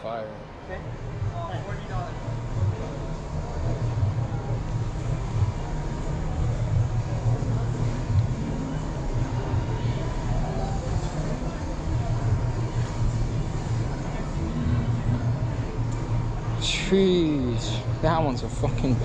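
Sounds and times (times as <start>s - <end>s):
faint voices: 0.0s - 19.0s.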